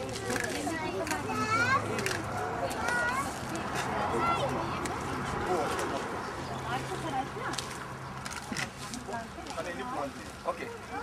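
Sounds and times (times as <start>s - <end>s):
toddlers chattering and calling out: 0.0s - 7.6s.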